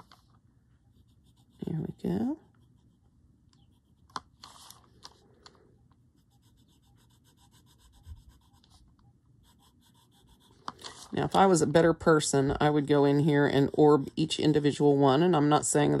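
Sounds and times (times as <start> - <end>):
pencil scratching on paper: 0.8 - 4.1, 6.2 - 11.6.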